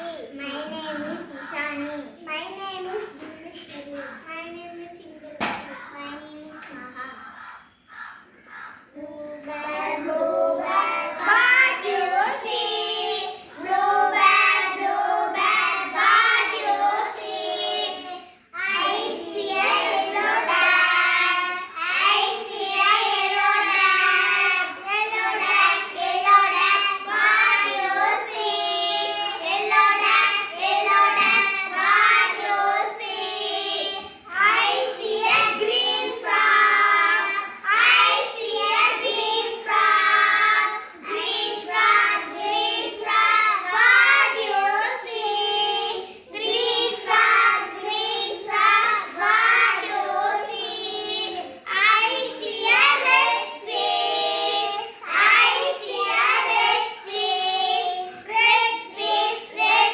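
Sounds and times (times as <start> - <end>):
girls singing together: 7.4 - 59.9.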